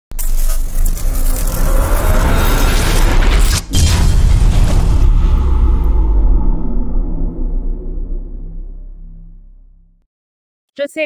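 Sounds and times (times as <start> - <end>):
rumble with heavy bass: 0.2 - 10.0
deep boom: 1.5 - 10.0.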